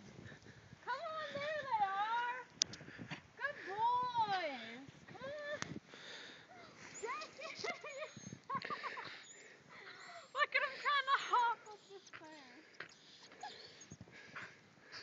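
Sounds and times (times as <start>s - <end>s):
dog whining and yowling: 13.0s - 13.9s.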